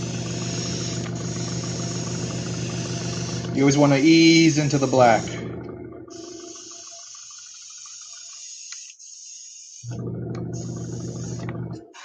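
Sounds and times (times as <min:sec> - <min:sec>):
airbrush hissing: 0:00.0 - 0:05.4, 0:06.1 - 0:09.9
compressor humming: 0:00.0 - 0:08.8, 0:09.8 - 0:12.0.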